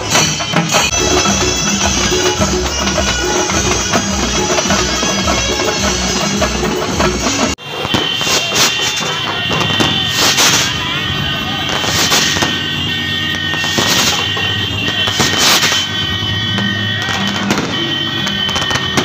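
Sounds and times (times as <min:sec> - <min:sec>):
music: 0:00.0 - 0:07.6
crowd: 0:00.0 - 0:19.0
loud sharp bangs: 0:00.0 - 0:19.0.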